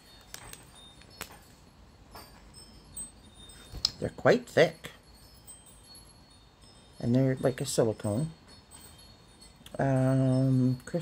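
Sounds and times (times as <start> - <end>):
faint high ringing tones: 0.0 - 11.0.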